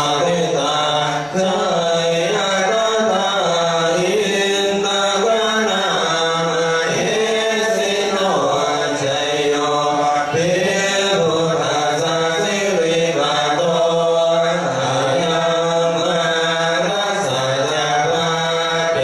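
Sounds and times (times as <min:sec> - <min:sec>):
voices chanting together: 0:00.0 - 0:19.0.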